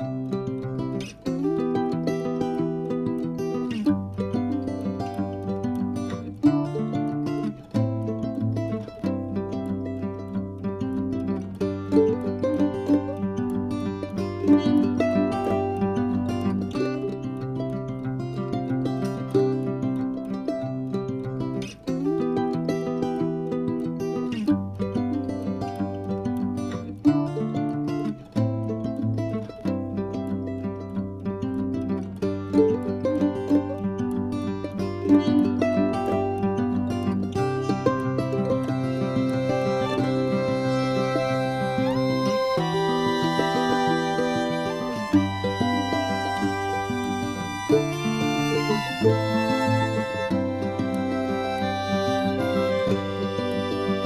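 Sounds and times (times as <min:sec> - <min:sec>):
instrumental plucked string music: 0:00.0 - 0:54.0.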